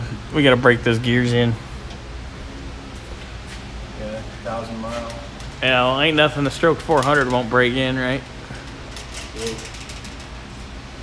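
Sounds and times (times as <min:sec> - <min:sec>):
workshop background noise: 0:00.0 - 0:11.0.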